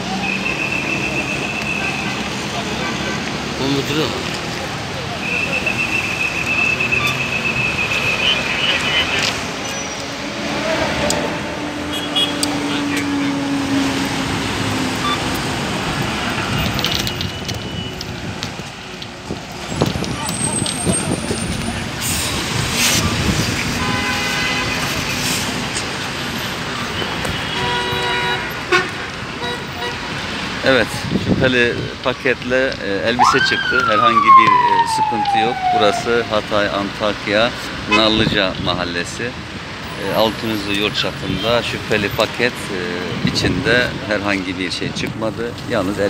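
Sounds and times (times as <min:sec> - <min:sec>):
vehicles passing: 0:00.0 - 0:46.0
lower horn toot: 0:05.2 - 0:15.3, 0:33.2 - 0:36.4
high-pitched horn toot: 0:11.9 - 0:12.4
background voices: 0:31.1 - 0:39.3.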